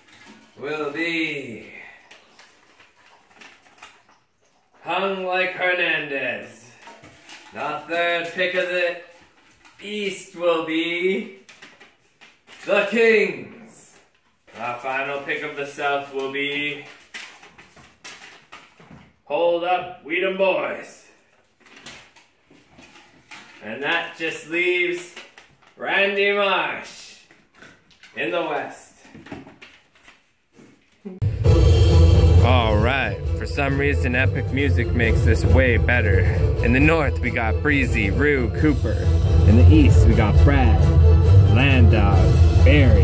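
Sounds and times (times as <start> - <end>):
paper rustling: 0.0 - 4.6, 6.7 - 10.6, 11.2 - 13.0, 13.9 - 19.2, 21.2 - 25.8, 27.2 - 31.0
man speaking: 0.6 - 2.0, 32.4 - 43.0.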